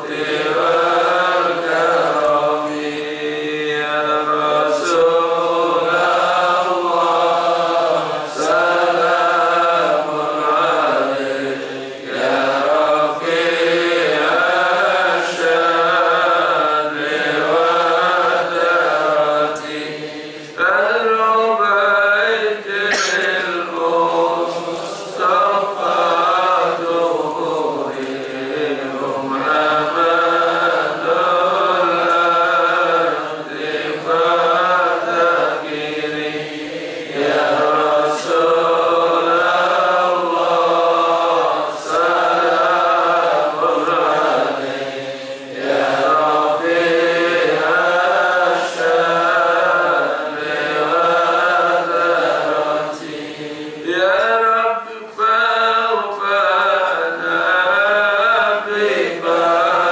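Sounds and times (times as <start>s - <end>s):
man chanting a devotional hymn: 0.0s - 59.9s.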